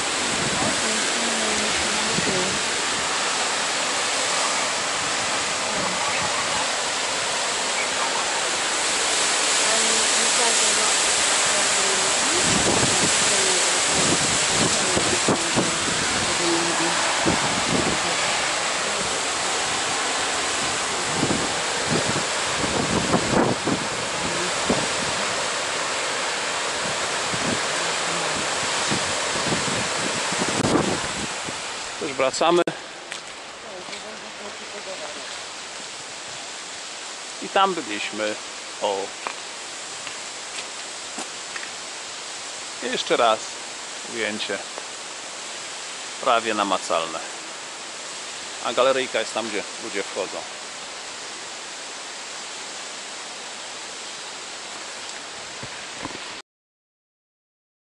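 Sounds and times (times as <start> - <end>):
wind buffeting microphone: 0.0 - 25.8, 26.6 - 31.8
waterfall rushing: 0.0 - 56.4.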